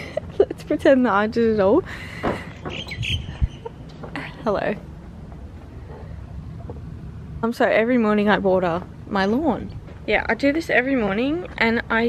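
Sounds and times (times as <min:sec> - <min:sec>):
short bird calls: 0:02.7 - 0:03.7.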